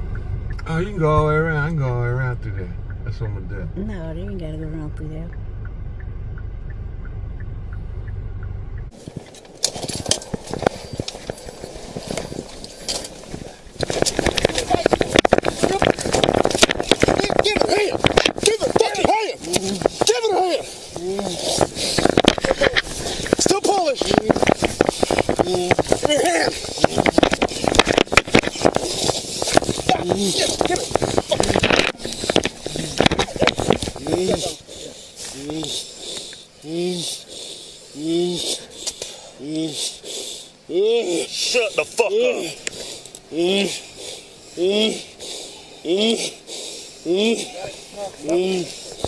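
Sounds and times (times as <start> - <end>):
low rumble inside car cabin: 0.0 - 49.0
rubbing and scuffing against microphone: 9.0 - 35.8.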